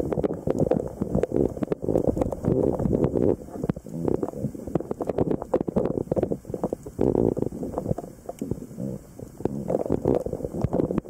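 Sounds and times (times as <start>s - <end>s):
sharp underwater clicks: 0.0s - 8.6s, 9.2s - 11.0s
low rumbling underwater noise: 0.0s - 11.0s.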